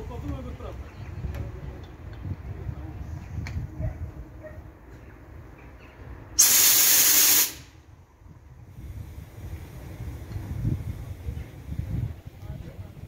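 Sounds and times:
compressed air hiss: 6.4 - 7.8.

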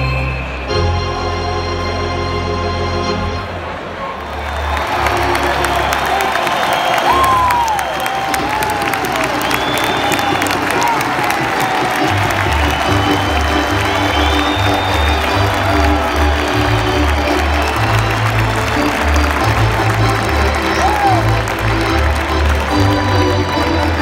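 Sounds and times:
organ playing a tune: 0.0 - 3.8, 4.6 - 24.0
crowd chatter: 3.1 - 24.0
crowd applause: 3.6 - 24.0.

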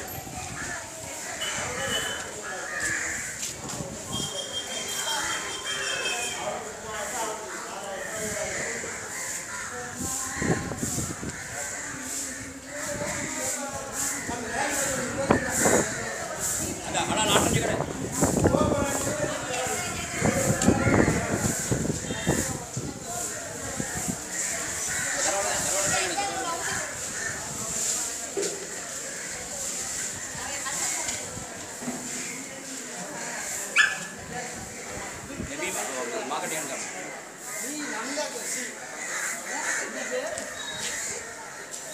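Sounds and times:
indistinct voices: 0.0 - 41.9
people talking: 0.0 - 41.9
street ambience: 0.0 - 41.9.

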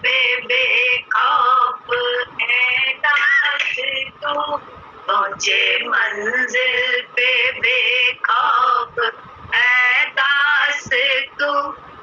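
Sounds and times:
woman singing devotional song: 0.0 - 12.0.

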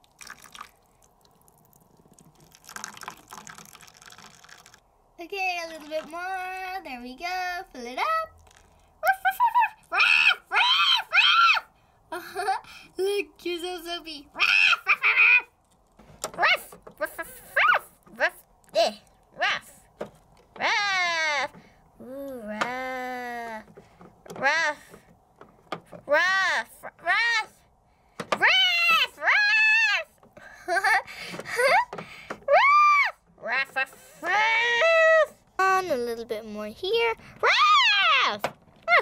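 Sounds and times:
person imitating dog yelps: 14.4 - 15.6, 16.4 - 18.0, 32.5 - 35.4.

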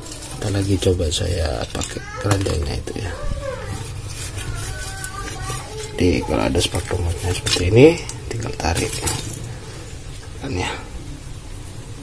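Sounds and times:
narration: 0.0 - 11.0.

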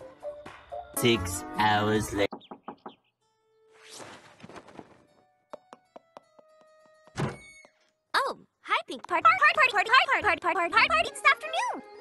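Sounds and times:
loud thunk: 7.2 - 7.4.

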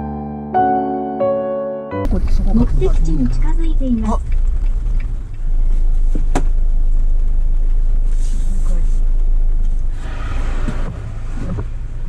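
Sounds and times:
car rumbling on wet pavement: 2.1 - 12.0.

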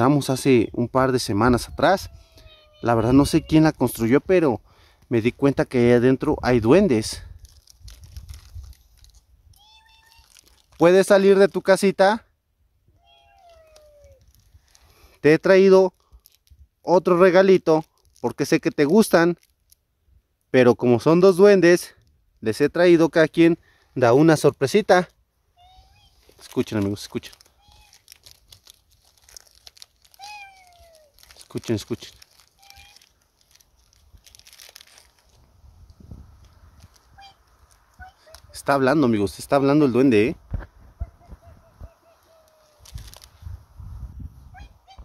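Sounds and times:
faint meow-like call: 1.3 - 4.0, 9.5 - 10.5, 12.9 - 14.3, 25.6 - 26.3, 27.6 - 28.1, 30.1 - 31.2, 32.6 - 33.1, 44.5 - 45.0
faint rustling and crinkling: 6.9 - 11.4, 13.0 - 19.8, 25.6 - 38.7, 40.4 - 43.6.

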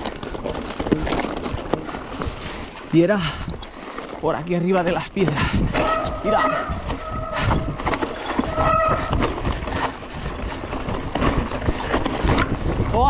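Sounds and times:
bike rattling over rocks: 0.0 - 13.0
wind on microphone: 5.3 - 13.0
high squeals: 5.8 - 9.4.

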